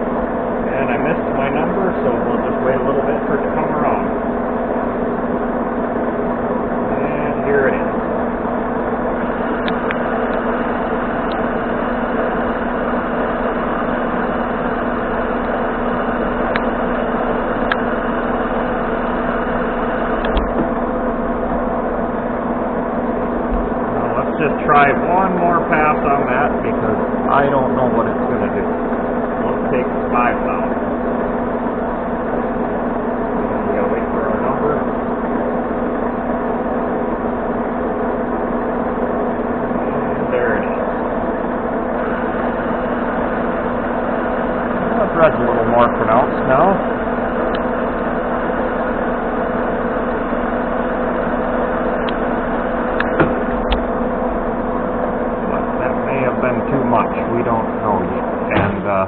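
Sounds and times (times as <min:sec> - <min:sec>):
lathe machine hum: 0:00.0 - 0:59.0.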